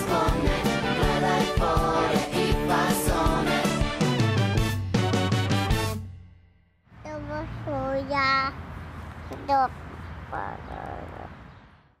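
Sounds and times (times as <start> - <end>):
toddler babbling: 9.4 - 11.3.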